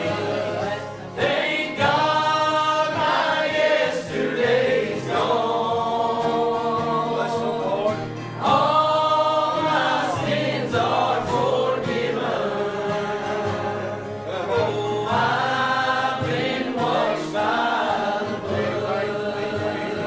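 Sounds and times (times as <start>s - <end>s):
acoustic guitars: 0.0s - 20.0s
group singing gospel song: 0.0s - 20.0s.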